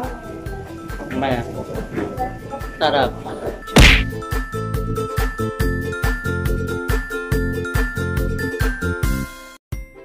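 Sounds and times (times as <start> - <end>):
background music: 0.0 - 10.0
loud sharp whack: 3.8 - 4.2.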